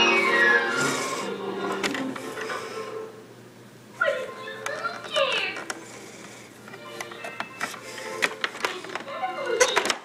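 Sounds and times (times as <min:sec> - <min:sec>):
vacuum cleaner whirring: 0:00.0 - 0:03.0.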